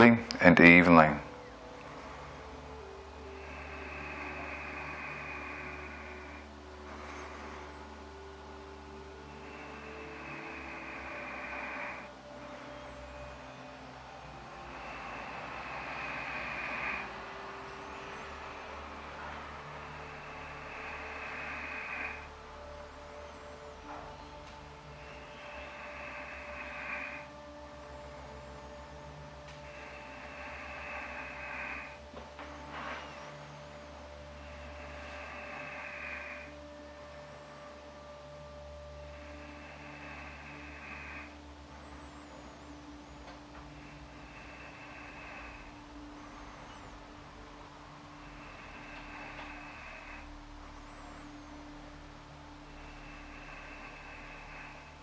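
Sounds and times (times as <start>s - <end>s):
faint low hum: 0.0s - 55.0s
slow controlled breathing: 0.0s - 55.0s.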